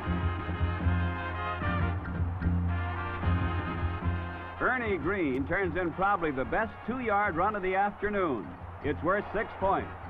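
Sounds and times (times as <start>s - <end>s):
brass orchestral music: 0.0s - 7.5s.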